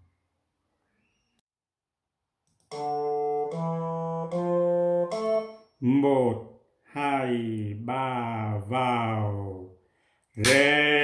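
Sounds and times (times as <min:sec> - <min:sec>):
electronic keyboard held notes: 0:02.6 - 0:05.8.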